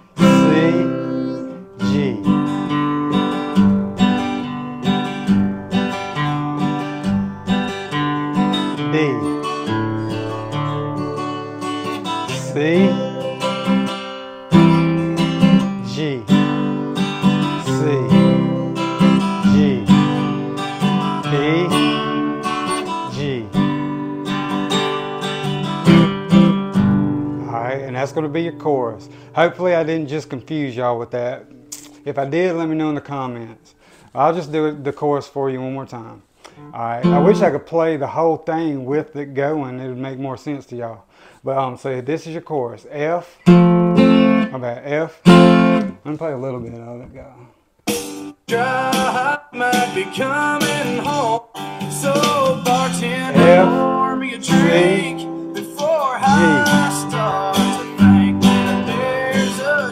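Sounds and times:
acoustic guitar strummed: 0:00.0 - 0:34.0, 0:36.6 - 0:37.7, 0:43.4 - 0:44.6, 0:45.2 - 0:46.0, 0:47.8 - 0:59.9.

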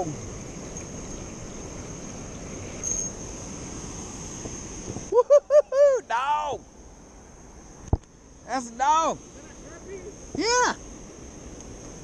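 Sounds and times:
wind on microphone: 0:04.2 - 0:05.2.

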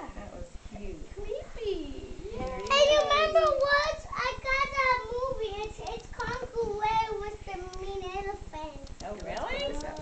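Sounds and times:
child singing: 0:02.4 - 0:08.9.

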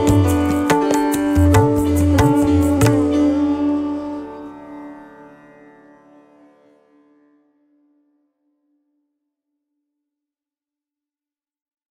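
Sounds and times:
sitar note ringing: 0:00.0 - 0:08.7.

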